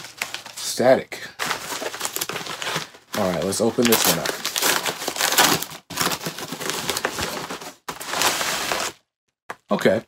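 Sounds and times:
paper and plastic crinkling: 0.0s - 9.0s
bubble mailer being torn open: 2.0s - 7.2s.

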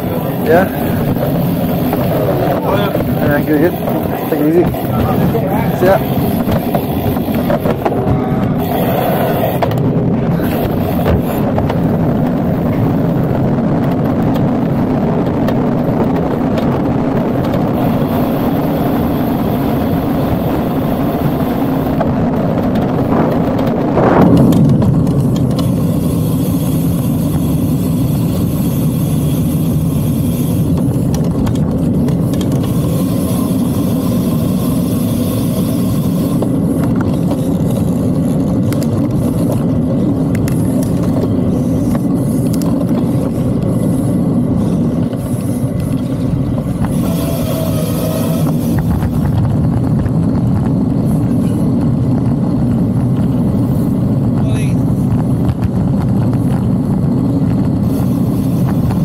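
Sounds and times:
bicycle tyre noise: 0.0s - 59.0s
wind rush on microphone: 0.0s - 59.0s.

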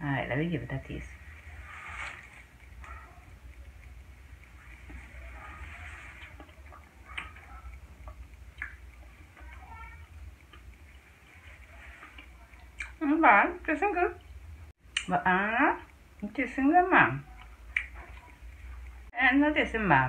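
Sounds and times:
low steady hum: 0.0s - 20.0s
wet chewing sounds: 1.2s - 13.0s, 17.2s - 19.1s.

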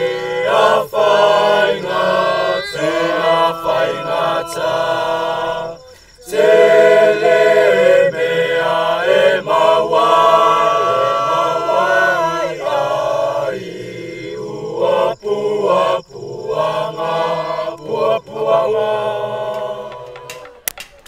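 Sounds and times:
choir singing long notes: 0.0s - 20.6s.

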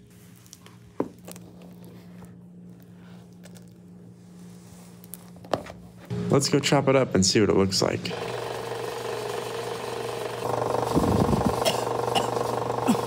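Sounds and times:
rubbery squishing and crinkling: 0.0s - 6.0s.

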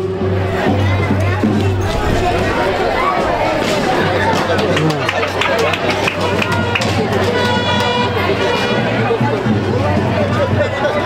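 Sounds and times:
horn steady note: 6.3s - 9.2s.

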